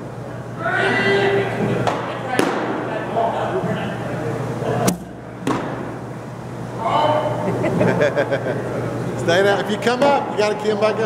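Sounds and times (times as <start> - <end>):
ball smacking into leather mitt: 1.9 - 2.8, 4.9 - 5.9.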